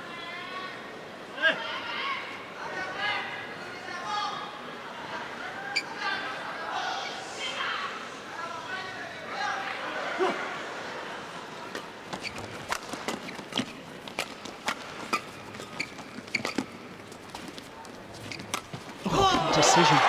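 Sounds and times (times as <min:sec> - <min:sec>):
shoes squeaking on court floor: 0:11.7 - 0:19.5.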